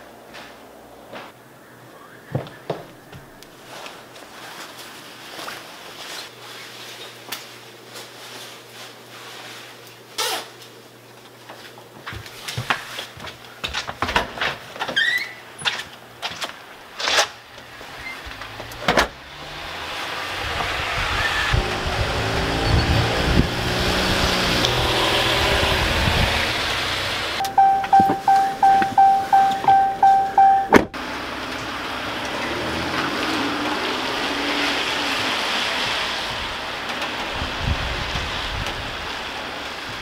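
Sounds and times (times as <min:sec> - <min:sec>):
car warning chime beeping: 0:27.4 - 0:31.0
car door slam: 0:30.7 - 0:30.9
rain hiss: 0:31.1 - 0:40.0.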